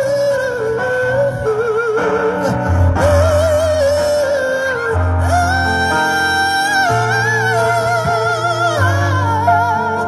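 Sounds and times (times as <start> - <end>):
high voice singing with vibrato: 0.0 - 10.0.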